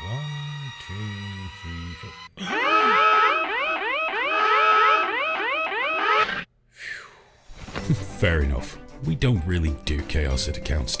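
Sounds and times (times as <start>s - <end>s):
background music: 0.0s - 2.9s, 7.6s - 11.0s.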